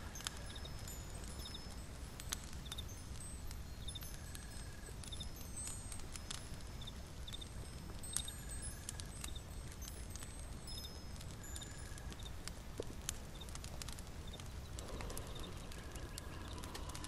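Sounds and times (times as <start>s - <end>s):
chime-like tinkling tones: 0.0s - 12.5s
low rumble: 14.7s - 17.0s.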